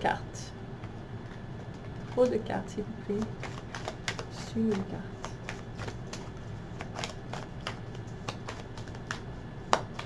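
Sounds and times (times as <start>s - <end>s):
cards being shuffled: 0.8s - 2.5s, 3.1s - 10.0s.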